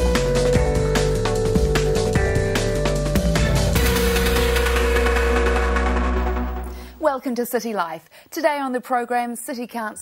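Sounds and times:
deep bass drone: 0.4 - 6.8
theme music sustained chord: 0.8 - 7.0.

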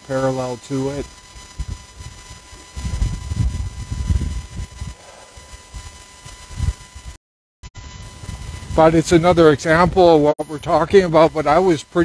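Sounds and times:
faint high-pitched tone: 0.0 - 7.2.

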